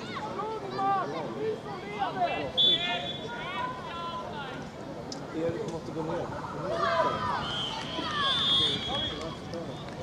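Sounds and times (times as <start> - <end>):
people shouting and calling out: 0.0 - 4.7, 6.3 - 9.5.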